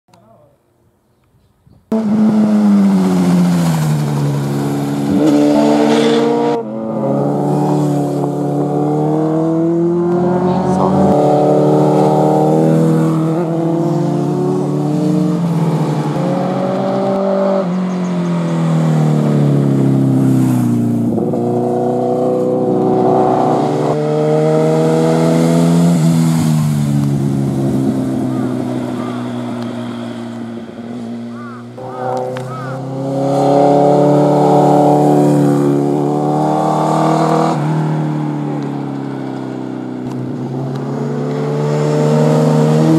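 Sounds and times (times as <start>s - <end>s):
motorcycle engine revving: 1.9s - 42.9s
person saying wow: 28.3s - 29.4s, 31.3s - 32.9s.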